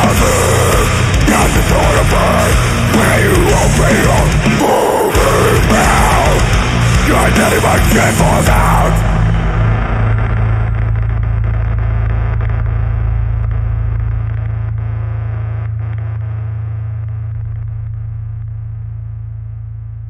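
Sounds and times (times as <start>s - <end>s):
distorted guitar chord ringing: 0.0s - 19.7s.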